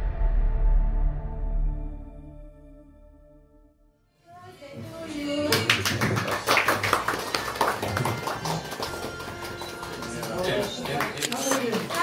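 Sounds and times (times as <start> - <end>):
people clapping: 4.8 - 12.0.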